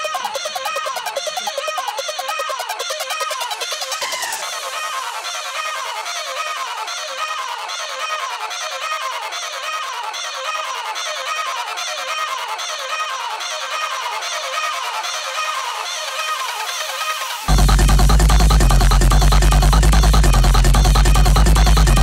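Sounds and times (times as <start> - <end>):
electronic dance music: 0.0 - 22.0
falling synth line: 17.5 - 22.0.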